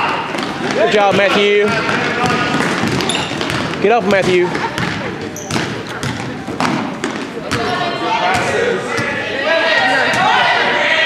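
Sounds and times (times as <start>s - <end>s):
spectators' voices: 0.0s - 11.0s
basketball bouncing on hardwood floor: 1.1s - 7.7s.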